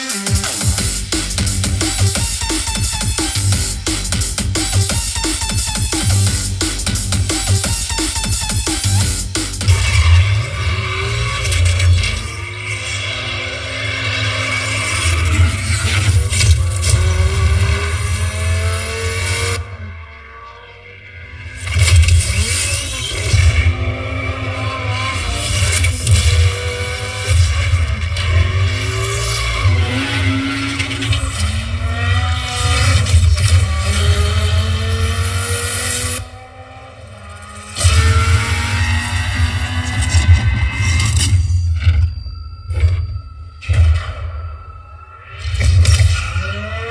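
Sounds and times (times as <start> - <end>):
music with heavy bass: 0.0 - 12.9, 13.6 - 19.8, 37.0 - 41.5
car engine revving: 0.0 - 41.3.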